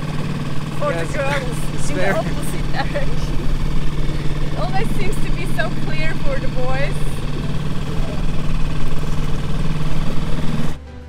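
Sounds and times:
outboard motor running: 0:00.0 - 0:10.9.

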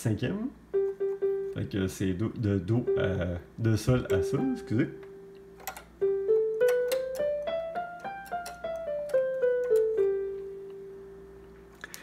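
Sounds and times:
electronic keyboard playing scale: 0:00.7 - 0:11.8.

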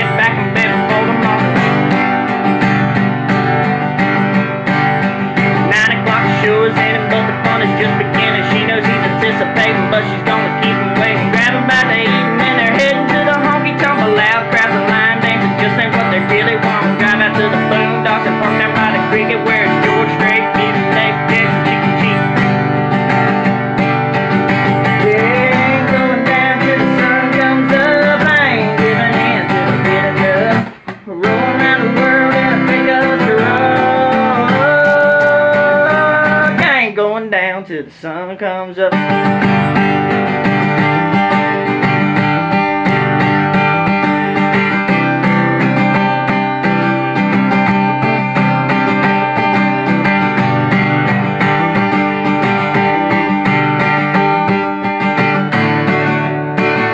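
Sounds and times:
man singing: 0:00.0 - 0:03.4, 0:04.7 - 0:56.9
acoustic guitar strumming: 0:00.0 - 0:56.9.

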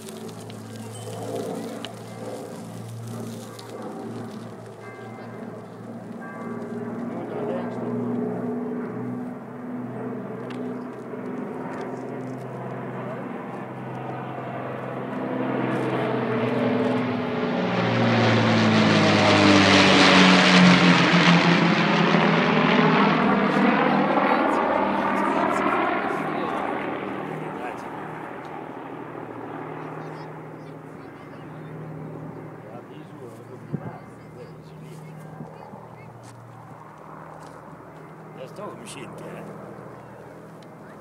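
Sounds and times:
propeller plane engines droning: 0:00.0 - 0:41.0.

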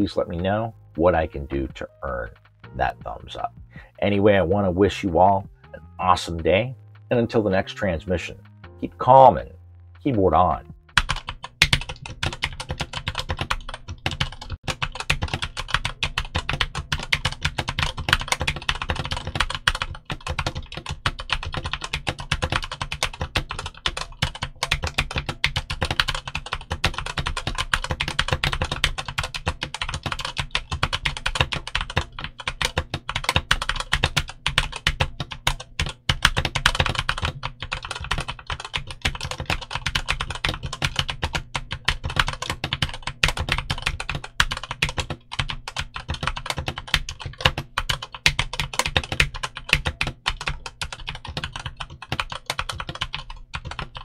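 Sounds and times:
mechanical keyboard typing: 0:10.5 - 0:54.0.

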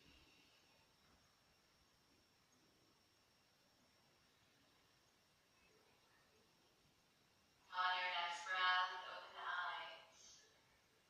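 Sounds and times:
voice singing through small speaker: 0:07.7 - 0:10.4.

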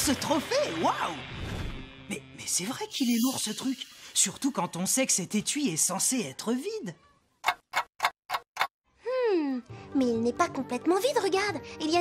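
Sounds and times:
cartoon background music: 0:09.2 - 0:12.0.

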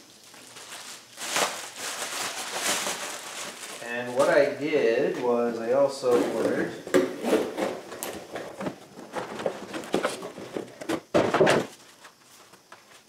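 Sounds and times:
cardboard scraping and rustling: 0:06.0 - 0:13.0.

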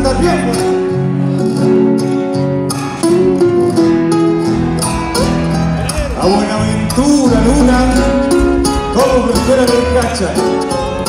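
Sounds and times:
folk band playing guitars: 0:00.0 - 0:11.0.

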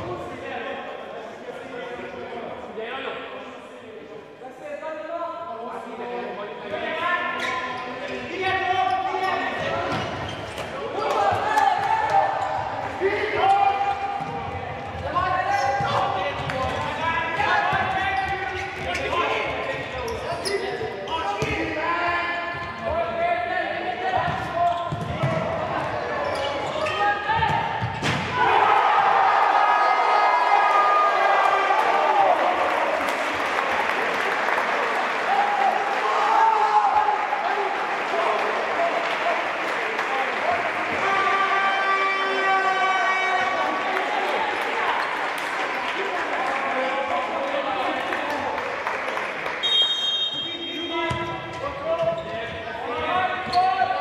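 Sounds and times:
crowd cheering: 0:25.3 - 0:50.9.

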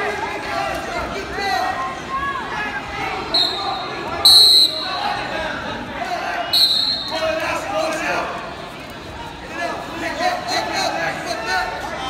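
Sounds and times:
shouting voices echoing: 0:00.0 - 0:08.4
referee's whistle blasts: 0:03.3 - 0:05.1, 0:06.4 - 0:07.3.

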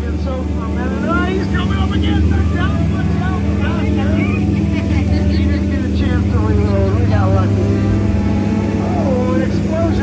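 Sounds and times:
boat motor humming: 0:00.0 - 0:10.0
voices talking: 0:00.0 - 0:10.0.

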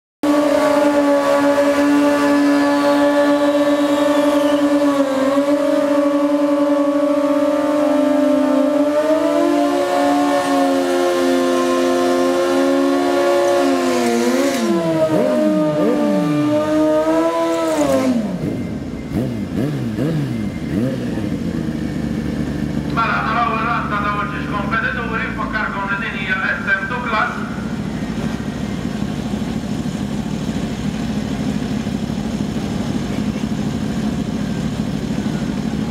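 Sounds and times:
motorcycle engine revving: 0:00.2 - 0:35.9
motorcycles blipping throttles: 0:00.3 - 0:35.9.

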